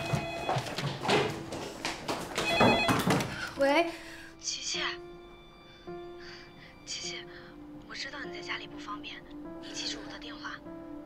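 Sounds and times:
telephone ringing: 0.0s - 0.9s, 2.4s - 3.3s
knocks and thumps: 0.0s - 3.4s.

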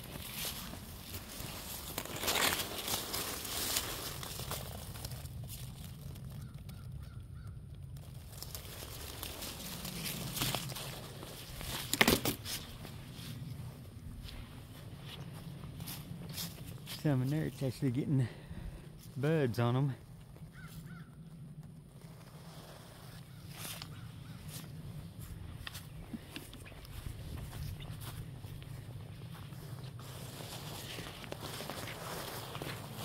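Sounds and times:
brushing past twigs: 0.0s - 6.8s, 8.0s - 18.0s, 22.0s - 33.0s
footsteps crunching dry leaves: 0.0s - 19.7s, 22.0s - 33.0s.

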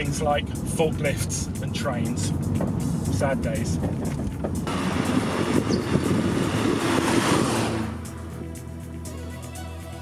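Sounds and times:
car engine running: 0.0s - 8.9s
road and wind noise: 0.0s - 10.0s.

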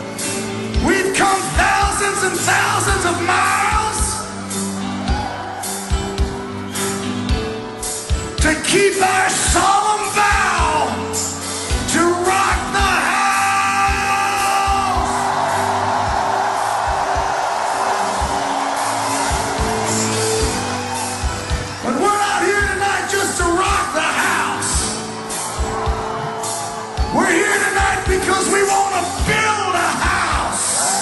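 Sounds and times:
crowd singing and cheering: 0.0s - 31.0s
live rock band: 0.0s - 31.0s
kick drum pulsing: 16.0s - 20.6s.

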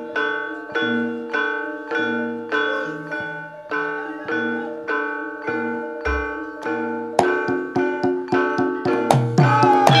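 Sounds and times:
gamelan metallophones ringing: 0.0s - 10.0s.

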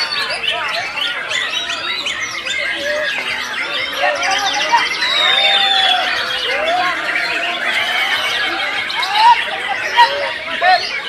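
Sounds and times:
birds singing overlapping whistles: 0.0s - 11.0s.

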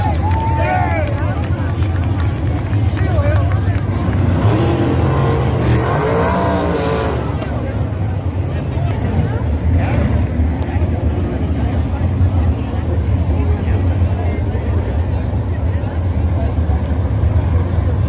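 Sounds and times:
racing car engines droning: 0.0s - 18.0s.

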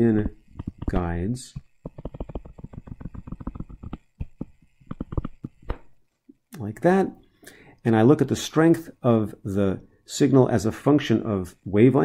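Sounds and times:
stylus tapping on a tablet: 0.5s - 1.0s, 1.6s - 5.8s.

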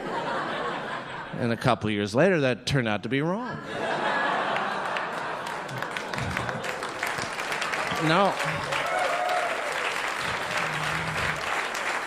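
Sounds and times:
audience applauding: 4.4s - 12.0s.

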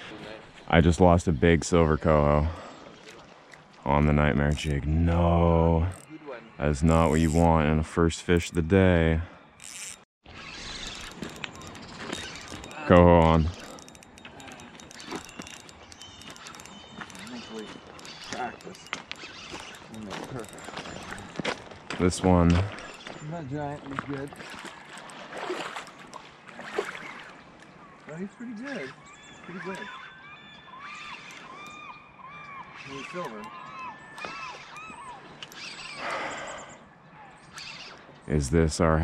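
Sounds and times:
birds calling: 0.0s - 39.0s
fishing reel clicking: 9.6s - 21.5s, 32.8s - 36.0s
water splashing: 16.5s - 27.7s.

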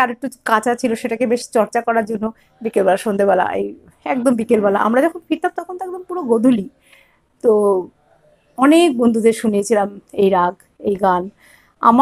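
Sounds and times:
woman speaking: 0.0s - 6.8s, 7.4s - 7.9s, 8.6s - 12.0s.

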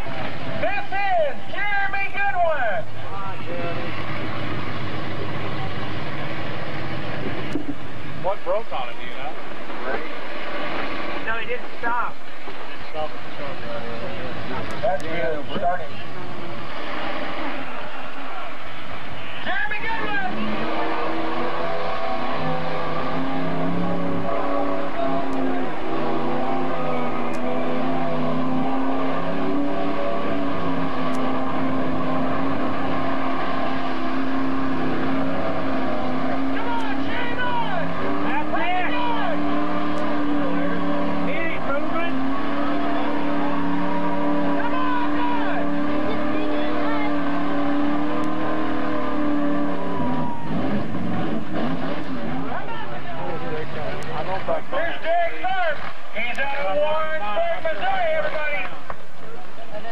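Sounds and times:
truck engine at high revs: 0.0s - 59.2s.

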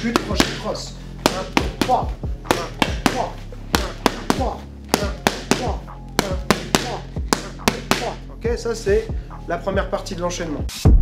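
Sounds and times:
boxing gloves hitting mitts: 0.0s - 8.2s
background music: 0.0s - 11.0s.

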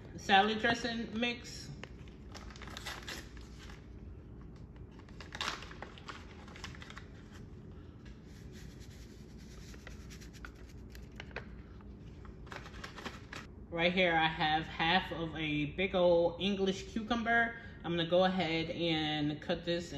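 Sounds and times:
packet crinkling and rustling: 1.8s - 7.6s, 8.2s - 13.5s.

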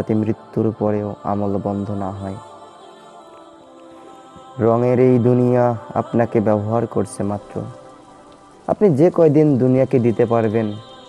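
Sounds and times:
man preaching in chanting voice: 0.0s - 2.7s, 4.4s - 7.9s, 8.7s - 11.0s
faint steady hiss: 0.0s - 11.0s.

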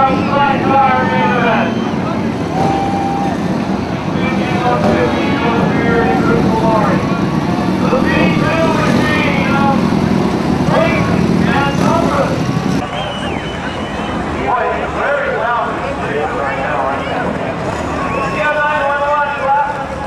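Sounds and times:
people's voices: 0.0s - 20.0s
sidecar engines running: 0.0s - 20.0s.

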